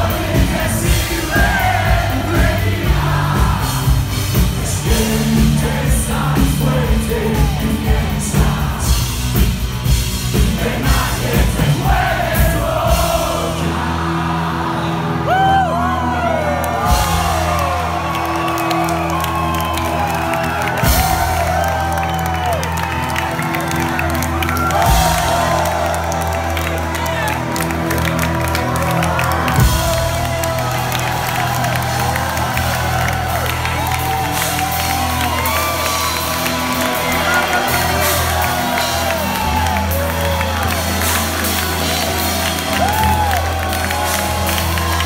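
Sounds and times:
live rock band: 0:00.0 - 0:14.6, 0:16.4 - 0:45.0
crowd whooping and cheering: 0:13.8 - 0:45.0
drum hits: 0:29.5 - 0:31.2.

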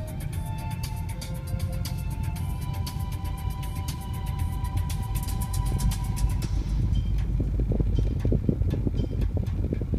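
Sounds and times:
car driving rumble: 0:00.0 - 0:09.9
music: 0:00.0 - 0:09.9
low thumps: 0:05.6 - 0:09.9.

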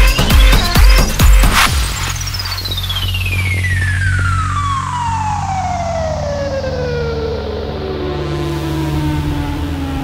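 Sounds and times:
pulsing bass line: 0:00.0 - 0:10.0
falling synth sweep: 0:01.5 - 0:10.0.

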